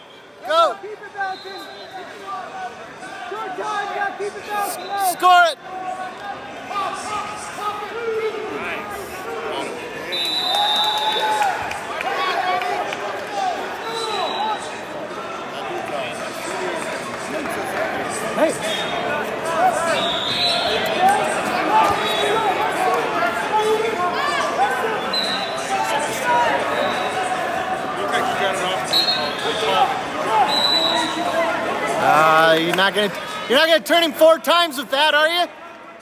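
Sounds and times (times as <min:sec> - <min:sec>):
arena crowd voices calling out: 0:00.0 - 0:36.0.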